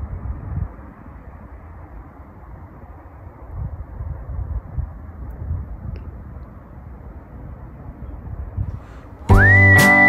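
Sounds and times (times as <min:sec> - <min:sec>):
faint background noise: 0:00.0 - 0:10.0
strummed acoustic guitar: 0:09.3 - 0:10.0
whistled melody: 0:09.3 - 0:10.0.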